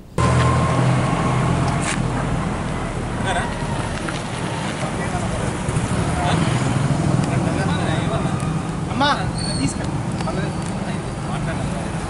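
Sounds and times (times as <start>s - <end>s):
low engine hum: 0.0s - 9.0s
traffic noise: 0.0s - 12.0s
indistinct crowd voices: 0.2s - 12.0s.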